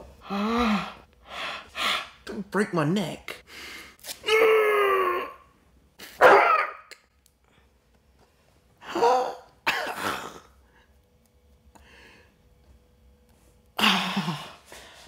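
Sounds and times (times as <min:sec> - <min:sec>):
man groaning in pain: 0:04.3 - 0:05.4.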